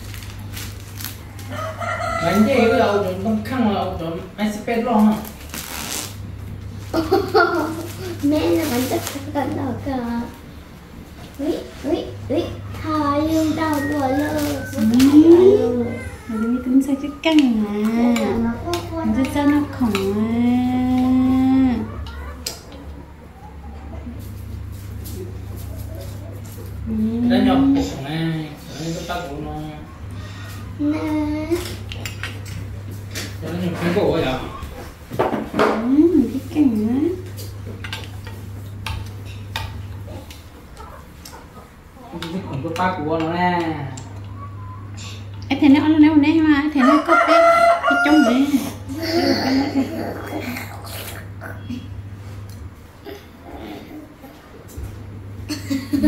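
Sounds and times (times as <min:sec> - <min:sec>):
packet crinkling: 0:00.0 - 0:01.5
steady low hum: 0:00.0 - 0:56.0.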